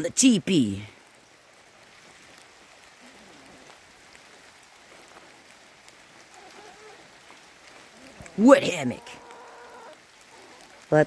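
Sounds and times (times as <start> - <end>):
light rain on leaves: 0.0 - 11.0.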